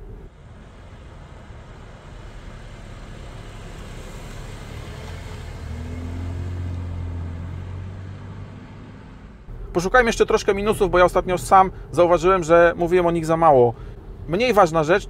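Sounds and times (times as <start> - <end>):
low engine hum: 0.0 - 15.0.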